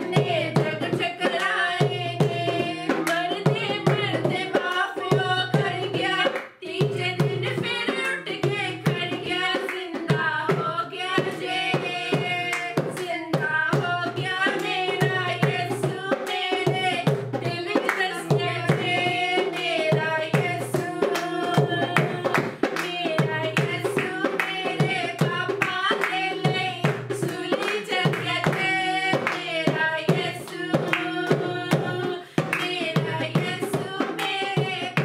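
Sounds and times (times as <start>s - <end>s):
percussion rhythm: 0.0s - 35.0s
women singing worship song: 0.0s - 35.0s
hand claps: 3.0s - 3.2s, 6.2s - 7.0s, 9.6s - 9.8s, 17.1s - 18.8s, 21.0s - 23.0s, 23.6s - 29.5s, 30.1s - 31.1s, 32.4s - 33.0s, 34.1s - 35.0s.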